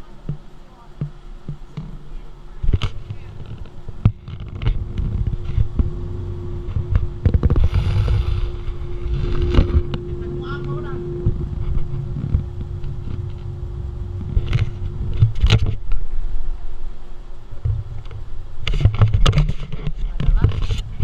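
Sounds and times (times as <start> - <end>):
steady hum: 0.0 - 21.0
wind buffeting microphone: 2.5 - 21.0.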